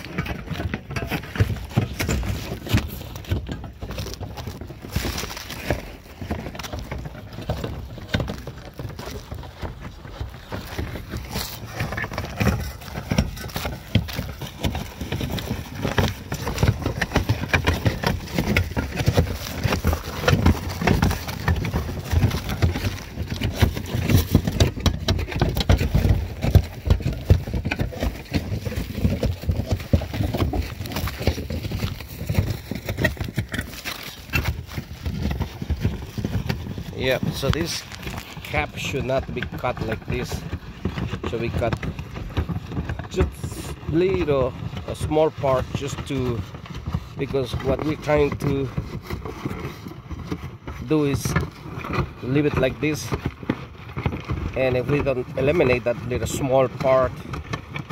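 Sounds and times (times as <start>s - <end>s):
handling noise knocking and scraping: 0.0s - 57.9s.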